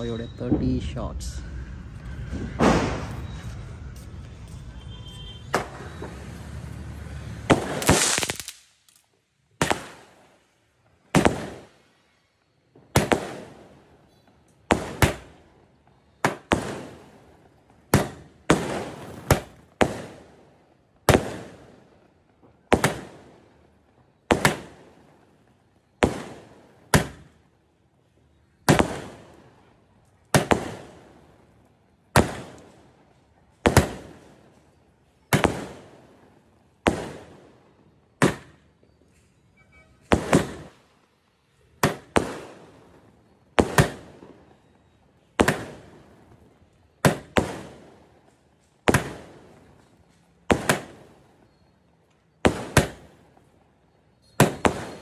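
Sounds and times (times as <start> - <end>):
firework bangs: 0.0 - 12.0, 12.7 - 38.9, 39.9 - 51.7, 52.3 - 55.0
firework rushing hiss: 5.6 - 9.0.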